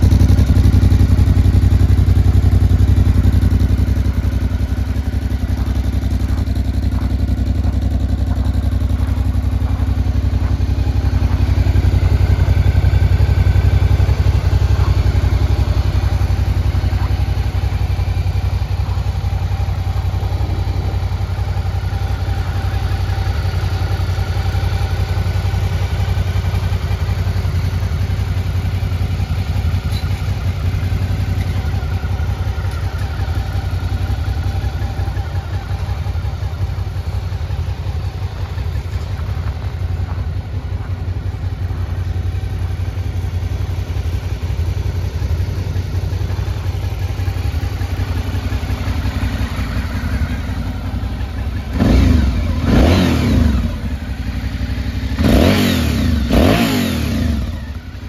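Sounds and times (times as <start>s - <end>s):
motorcycle engine idling: 0.0s - 58.0s
motorcycle engine revving: 0.0s - 58.0s.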